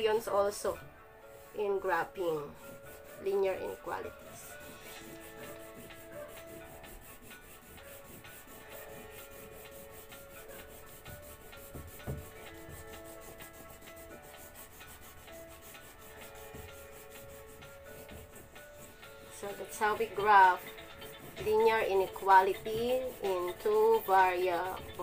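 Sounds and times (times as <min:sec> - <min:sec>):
crayon scratching on paper: 0:01.3 - 0:25.0.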